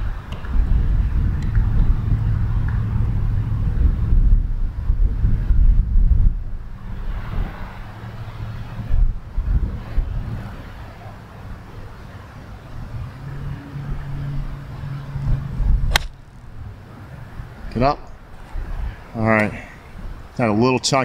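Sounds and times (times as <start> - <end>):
wind buffeting microphone: 0.0 - 10.8, 12.6 - 20.4.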